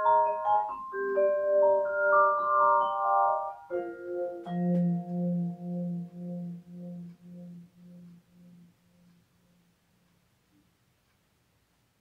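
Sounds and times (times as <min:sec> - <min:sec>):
vibraphone chord ringing: 0:00.0 - 0:09.6.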